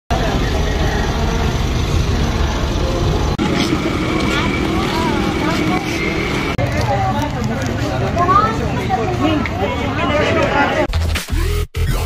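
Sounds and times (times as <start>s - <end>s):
vehicle engine idling: 0.1s - 8.9s
people talking: 0.1s - 10.9s.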